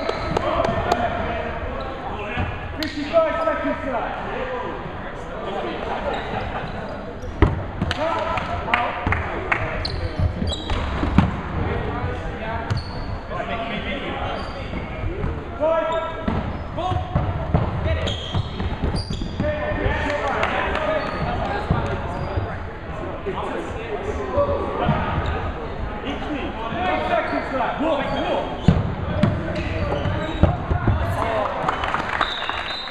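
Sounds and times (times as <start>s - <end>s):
balls hitting wooden floor: 16.2s - 22.1s, 28.6s - 31.3s.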